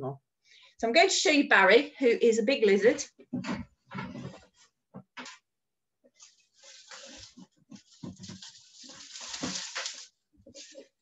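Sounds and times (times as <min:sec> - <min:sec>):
container rustling and scraping: 0:06.2 - 0:11.0.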